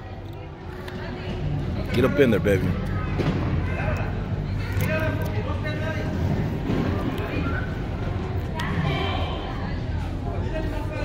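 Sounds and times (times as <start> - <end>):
indistinct voices of spectators: 0.0 - 11.0.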